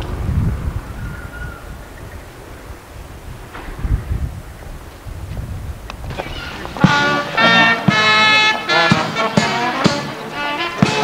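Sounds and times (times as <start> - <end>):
wind buffeting microphone: 0.0 - 11.0
music with brass: 6.4 - 11.0.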